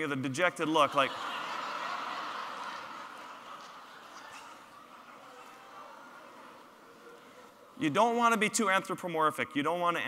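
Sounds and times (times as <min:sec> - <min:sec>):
audience laughing: 0:00.5 - 0:07.7.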